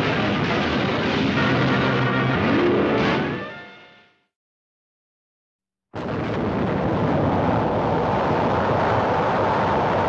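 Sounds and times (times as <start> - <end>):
explosion rumble: 6.0 - 10.0.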